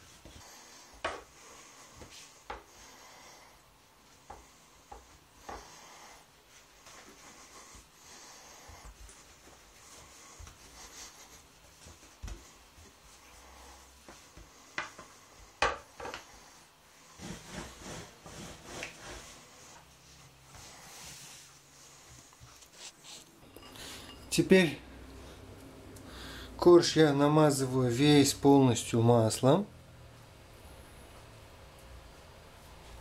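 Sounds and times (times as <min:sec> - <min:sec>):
rolling pin rolling dough: 0:00.0 - 0:24.9.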